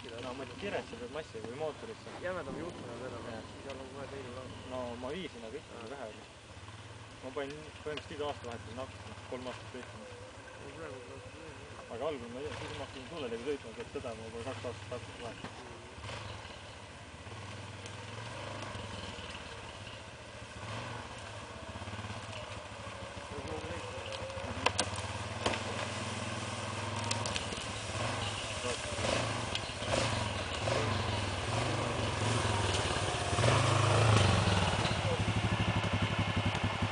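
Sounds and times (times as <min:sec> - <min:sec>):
quad bike engine running: 0:00.0 - 0:36.9.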